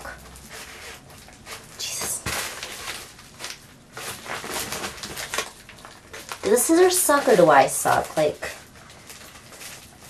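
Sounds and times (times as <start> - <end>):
plastic crinkling: 0.0 - 10.0.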